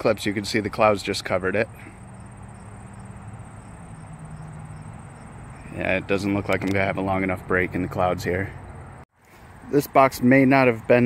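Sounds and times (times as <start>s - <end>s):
insect chirring: 2.0s - 5.8s.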